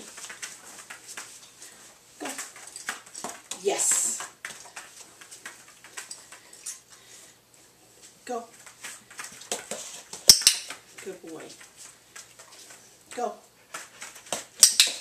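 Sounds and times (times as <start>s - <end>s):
dog moving on foam mats: 0.0s - 14.6s
person speaking: 3.5s - 4.4s, 8.2s - 8.6s, 11.0s - 11.7s.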